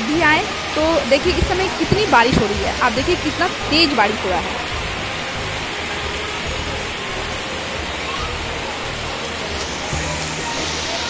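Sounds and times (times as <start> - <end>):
heavy rain pouring: 0.0 - 11.0.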